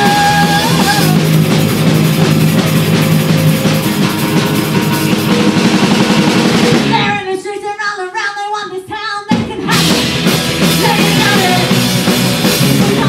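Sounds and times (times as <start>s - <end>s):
person singing: 0.0s - 1.3s, 6.9s - 10.0s, 10.7s - 11.8s, 12.6s - 13.0s
punk rock band playing: 0.0s - 7.4s, 9.3s - 13.0s.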